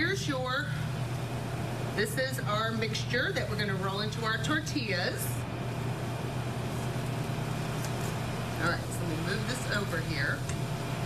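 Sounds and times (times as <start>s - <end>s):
kitchen equipment humming: 0.0s - 11.0s.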